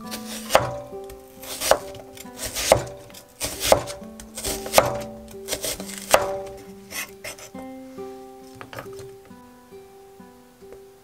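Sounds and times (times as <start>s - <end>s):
knife slicing onion on wooden board: 0.0s - 7.6s.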